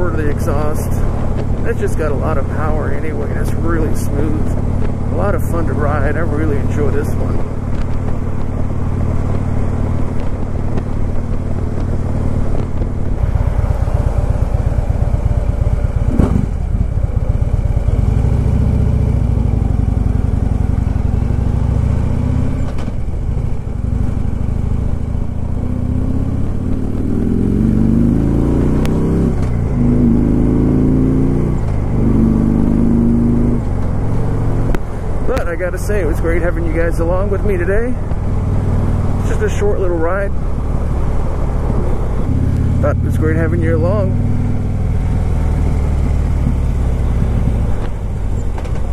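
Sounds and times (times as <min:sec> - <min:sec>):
motorcycle engine shifting gears: 0:00.0 - 0:48.9.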